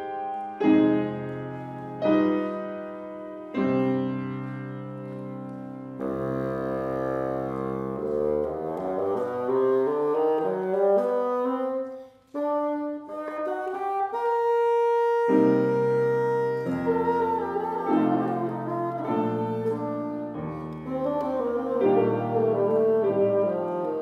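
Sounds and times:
bassoon and piano classical piece: 0.0s - 24.0s.

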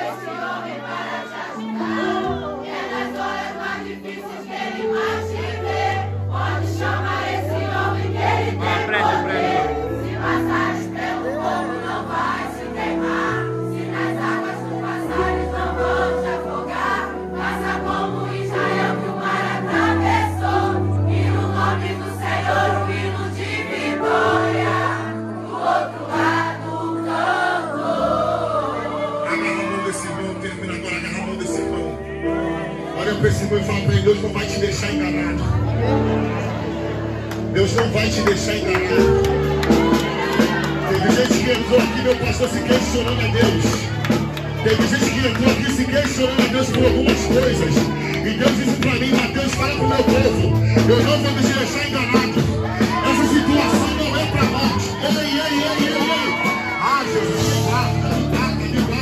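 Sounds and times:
congregation singing: 0.0s - 59.0s.

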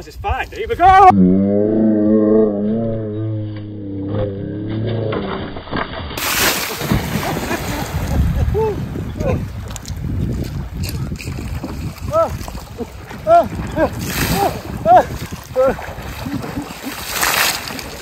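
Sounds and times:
man shouting: 0.7s - 1.2s, 12.1s - 12.4s, 13.2s - 13.5s, 14.3s - 15.8s
splashing lake water: 5.3s - 18.0s.

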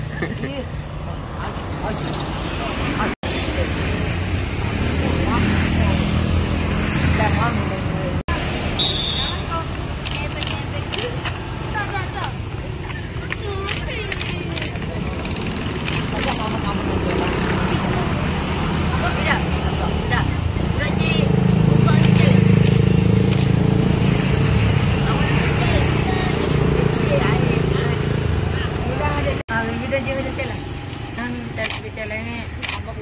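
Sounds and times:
motorbikes and scooters passing: 0.0s - 33.0s
young people talking and calling: 0.0s - 33.0s.

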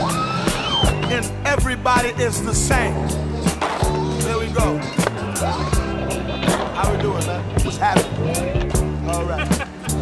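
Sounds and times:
song with drum beat and vocals: 0.0s - 10.0s.

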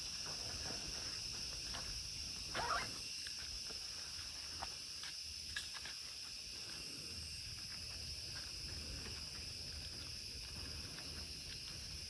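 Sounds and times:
insect chorus buzzing: 0.0s - 12.0s.

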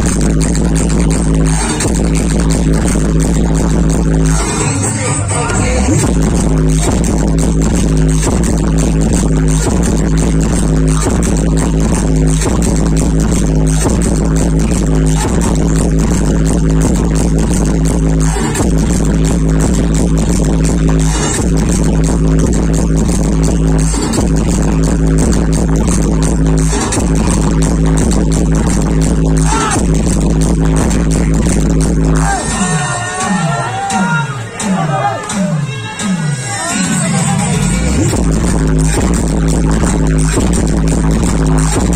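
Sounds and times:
electronic dance music: 0.0s - 41.9s.

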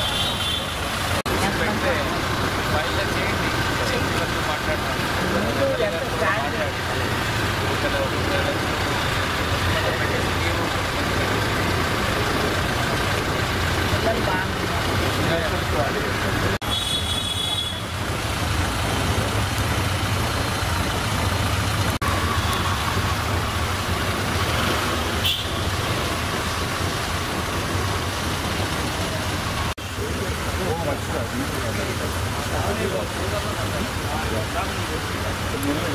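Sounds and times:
engine idling: 0.0s - 35.9s
indistinct talk of people: 1.2s - 16.6s, 28.8s - 35.9s.

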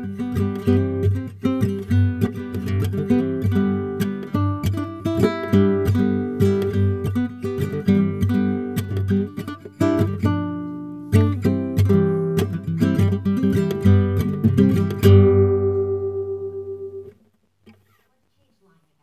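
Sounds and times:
fingerpicked nylon-string guitar: 0.0s - 18.0s.

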